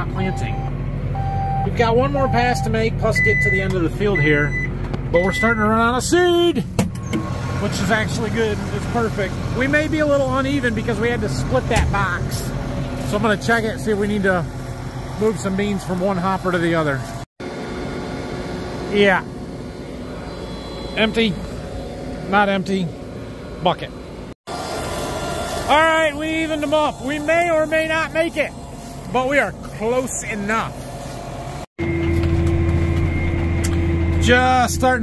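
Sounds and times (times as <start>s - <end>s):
tractor engine drone: 0.0s - 35.0s
machine hum: 7.3s - 35.0s.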